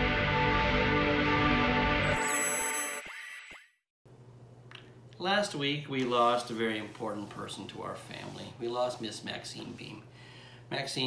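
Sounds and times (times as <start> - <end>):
bright chime tones with falling sweeps: 2.1 - 3.7.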